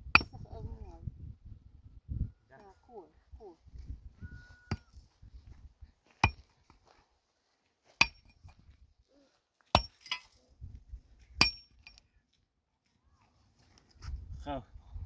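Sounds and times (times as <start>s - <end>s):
pick striking stony ground: 0.1s - 0.4s, 4.7s - 5.0s, 6.1s - 7.0s, 7.9s - 8.8s, 9.7s - 10.4s, 11.2s - 12.0s.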